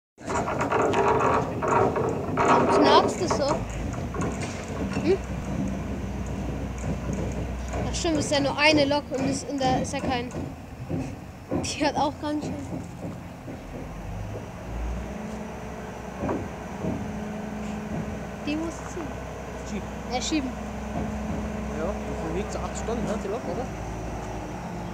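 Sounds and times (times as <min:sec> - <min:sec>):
locomotive running gear rattling: 0:00.2 - 0:24.9
steady hum: 0:00.2 - 0:24.9.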